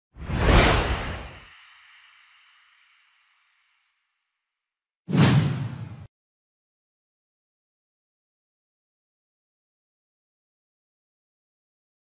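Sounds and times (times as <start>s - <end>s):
whoosh sound effects: 0.2s - 2.0s.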